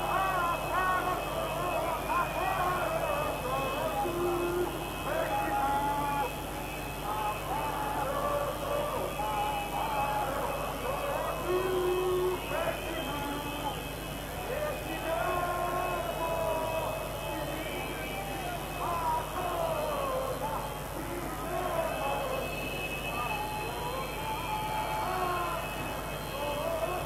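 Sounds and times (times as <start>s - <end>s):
protest crowd shouting and chanting: 0.0s - 27.0s.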